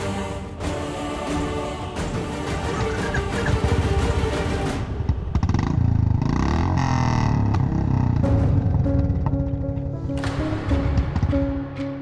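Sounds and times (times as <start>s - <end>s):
background music: 0.0s - 6.8s, 7.4s - 12.0s
motorcycle engine running: 5.0s - 9.9s.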